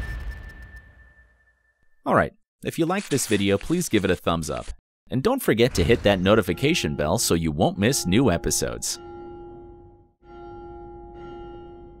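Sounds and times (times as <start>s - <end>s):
large church bell tolling: 5.8s - 12.0s.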